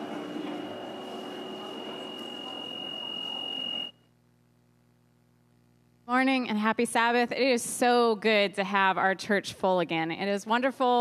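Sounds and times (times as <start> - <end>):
faint steady hum: 0.0 - 7.4.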